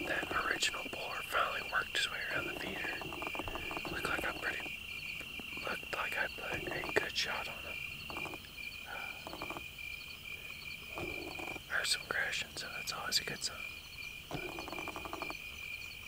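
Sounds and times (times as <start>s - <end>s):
frogs croaking trills: 0.0s - 16.0s
high-pitched insect drone: 0.0s - 16.0s.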